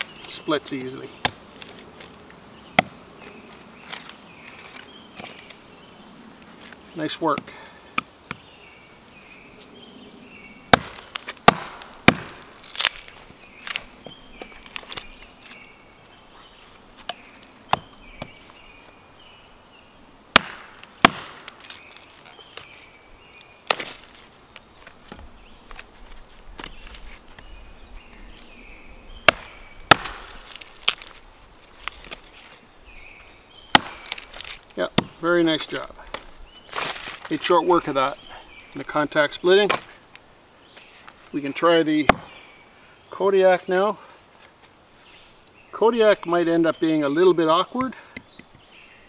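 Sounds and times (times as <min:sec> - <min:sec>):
axe splitting sticks: 0:10.7 - 0:15.6, 0:20.3 - 0:22.7, 0:23.6 - 0:24.1, 0:29.2 - 0:31.2, 0:33.7 - 0:37.4, 0:42.0 - 0:42.3.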